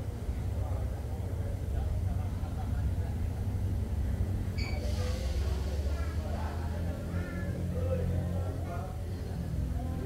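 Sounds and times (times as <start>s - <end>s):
diesel train engine idling: 0.0s - 10.0s.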